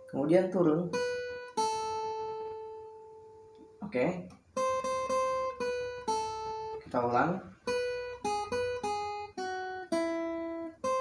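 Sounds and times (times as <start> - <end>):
acoustic guitar notes picked: 0.0 - 11.0.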